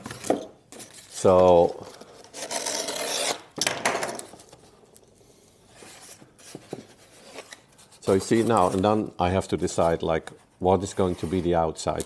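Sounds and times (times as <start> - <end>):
cardboard rubbing and scraping: 11.0 - 11.6.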